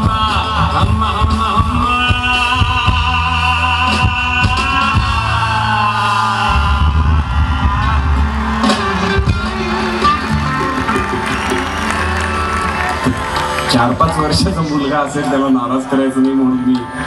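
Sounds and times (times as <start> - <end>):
man singing a long note: 0.0 - 7.6
audience cheering and whooping: 4.6 - 15.4.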